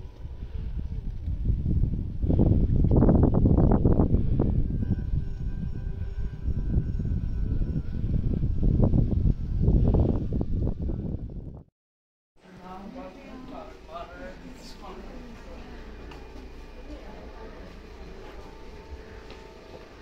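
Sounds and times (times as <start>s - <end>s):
wind buffeting microphone: 0.0s - 11.7s
faint music: 12.4s - 20.0s.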